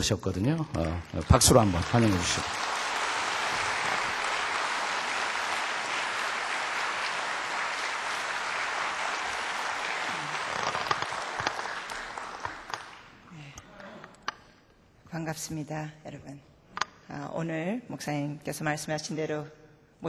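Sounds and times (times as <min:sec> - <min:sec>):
congregation applauding: 0:00.7 - 0:13.2.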